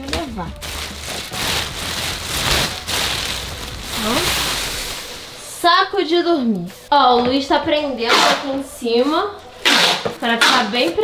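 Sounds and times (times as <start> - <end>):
plastic bags rustling: 0.0 - 6.3.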